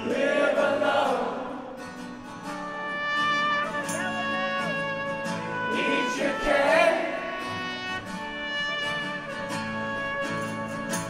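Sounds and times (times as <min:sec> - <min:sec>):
strummed acoustic guitar: 0:00.0 - 0:11.0
trumpet and trombone long notes: 0:02.5 - 0:11.0.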